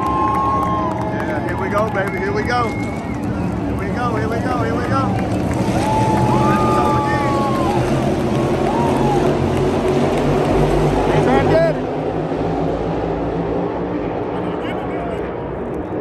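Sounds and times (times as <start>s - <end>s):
crowd yelling and whooping: 0.0s - 4.0s, 4.6s - 10.0s
race car engines roaring: 0.0s - 16.0s.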